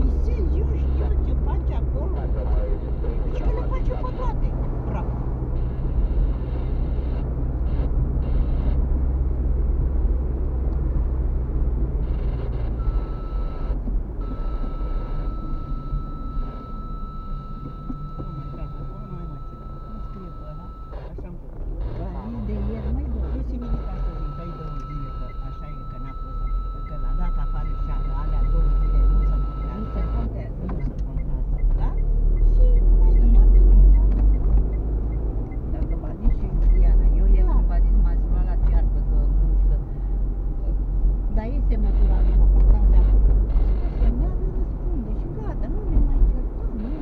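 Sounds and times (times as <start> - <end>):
car engine and tyre rumble: 0.0 - 47.0.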